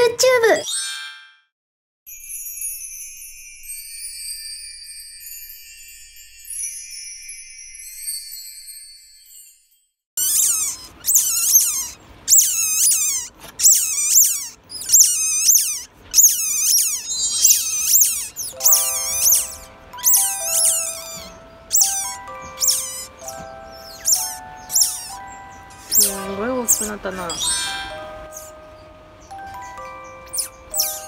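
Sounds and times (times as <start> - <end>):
otter pups squeaking: 10.2 - 31.0
bell-like background music: 18.5 - 31.0.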